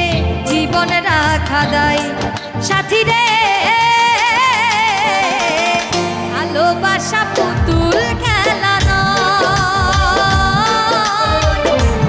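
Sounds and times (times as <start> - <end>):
drum beats: 0.0 - 12.0
folk song with instruments: 0.0 - 12.0.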